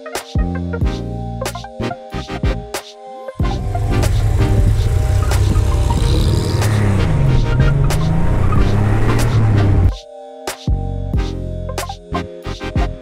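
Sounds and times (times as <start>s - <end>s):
car engine at road speed: 3.4s - 9.9s.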